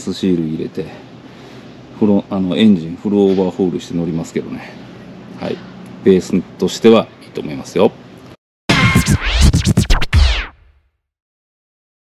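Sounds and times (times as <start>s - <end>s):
heavy bass beat: 8.7s - 10.6s
record scratches: 8.7s - 10.7s.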